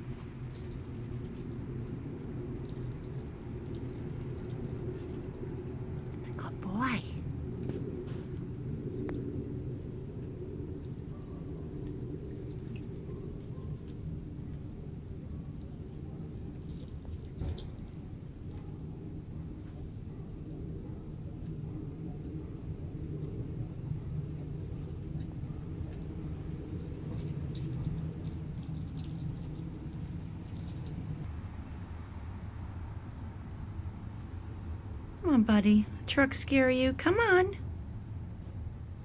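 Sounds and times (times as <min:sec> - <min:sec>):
trucks passing rumble: 0:00.0 - 0:39.0.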